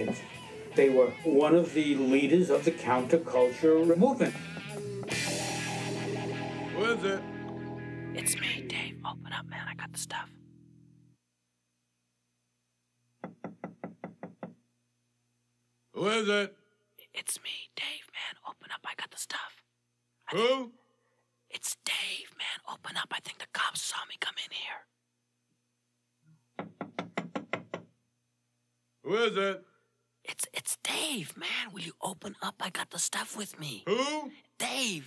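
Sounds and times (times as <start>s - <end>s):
knocking on a door: 13.2s - 14.6s, 26.6s - 28.0s.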